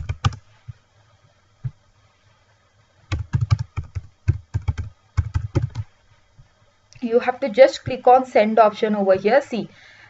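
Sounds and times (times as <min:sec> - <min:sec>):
computer keyboard typing: 0:00.0 - 0:00.4, 0:03.1 - 0:05.9.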